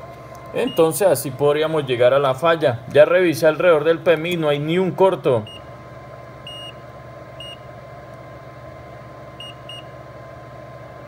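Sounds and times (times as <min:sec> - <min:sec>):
steady hum: 0:00.0 - 0:11.0
multimeter short high beeps: 0:00.6 - 0:01.0, 0:06.5 - 0:06.8, 0:07.4 - 0:07.6, 0:09.4 - 0:09.9.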